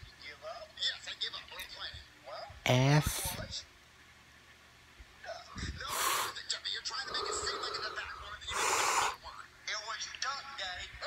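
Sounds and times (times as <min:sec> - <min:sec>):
loud breathy gasp: 0:07.1 - 0:09.2.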